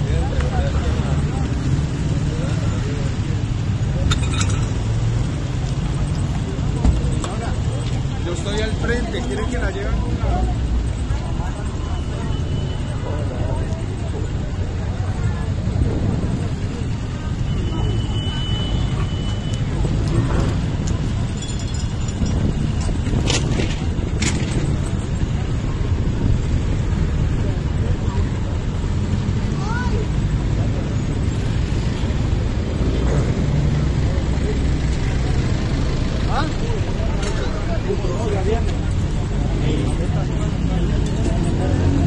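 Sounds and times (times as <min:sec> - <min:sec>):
indistinct voices: 0:00.0 - 0:42.0
road traffic: 0:00.0 - 0:42.0.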